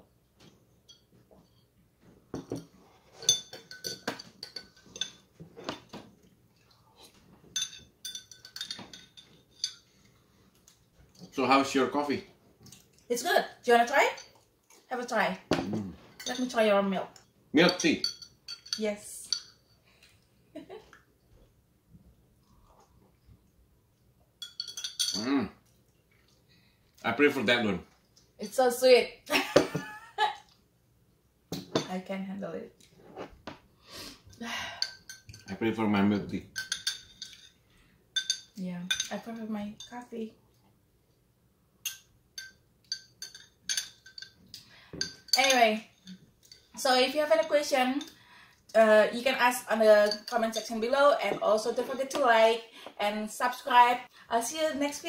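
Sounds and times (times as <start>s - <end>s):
metal spoon clinking on glass: 0.9s - 1.1s, 2.4s - 5.2s, 7.6s - 9.9s, 17.6s - 19.8s, 24.4s - 25.3s, 34.8s - 35.7s, 36.5s - 37.6s, 38.2s - 40.0s, 41.8s - 44.4s, 45.0s - 46.7s, 50.0s - 50.8s
person humming mm: 15.6s - 16.0s.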